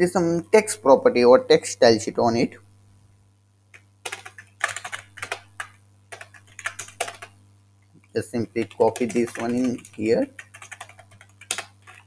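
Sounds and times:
typing on computer keyboard: 4.0s - 7.4s, 8.5s - 12.0s.

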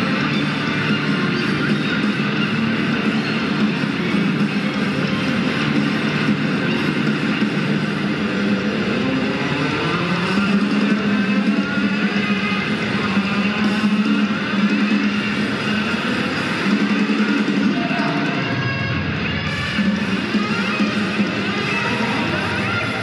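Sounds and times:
distorted electric guitar: 0.0s - 23.0s.

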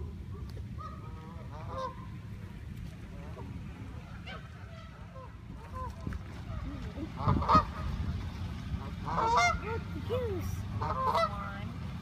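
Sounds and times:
geese honking: 0.0s - 11.7s.

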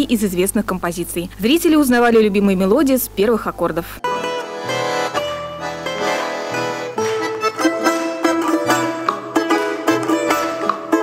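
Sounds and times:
balalaika strumming lively melody: 4.0s - 11.0s
button accordion low notes: 4.0s - 11.0s.

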